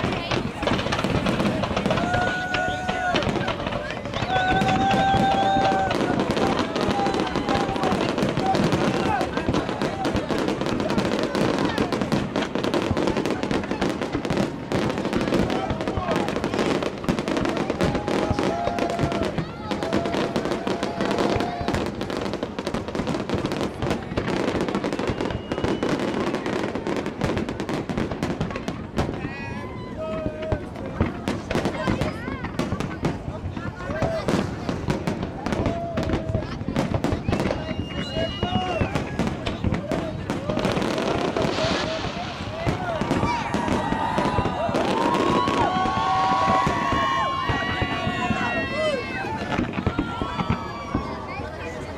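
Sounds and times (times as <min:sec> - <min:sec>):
fireworks bangs and crackling: 0:00.0 - 0:51.9.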